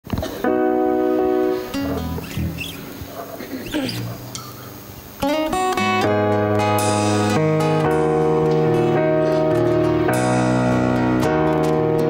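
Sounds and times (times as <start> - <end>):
guitar strums: 0.1 - 12.0
low bass notes: 1.8 - 2.6
squeaky gliding sounds: 2.0 - 3.0.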